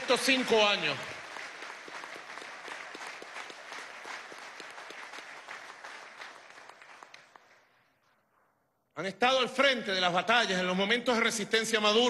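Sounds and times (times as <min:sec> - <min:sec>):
audience applauding: 0:00.0 - 0:07.9.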